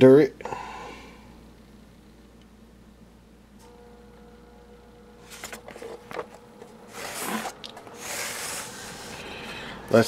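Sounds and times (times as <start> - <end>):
radio cabinet scraping on shelf: 6.9 - 9.1.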